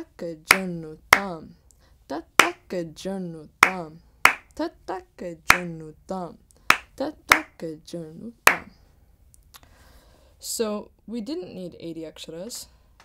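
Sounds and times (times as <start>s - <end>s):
person reciting drum syllables: 0.0s - 8.8s
sharp hand claps: 3.6s - 4.5s, 6.7s - 7.5s, 8.5s - 8.7s.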